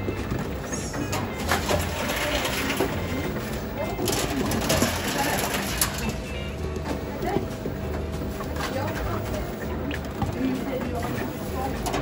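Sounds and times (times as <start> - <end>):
plastic bottles knocking and clattering: 0.0 - 6.2
conveyor motor humming: 0.0 - 12.0.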